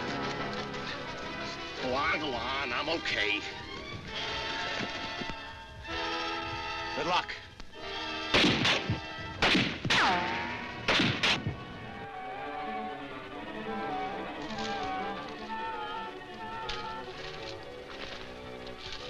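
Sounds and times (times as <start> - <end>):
film music with sustained notes: 0.0 - 19.0
ricochet whine: 7.8 - 12.9
gunshots: 8.3 - 11.7.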